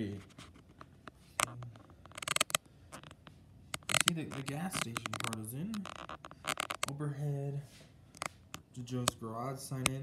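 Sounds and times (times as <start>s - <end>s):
fingers clicking on phone: 1.4s - 6.9s.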